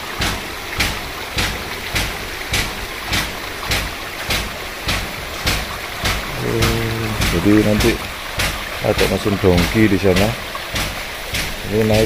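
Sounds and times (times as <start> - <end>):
water flowing in a concrete channel: 0.0 - 12.0.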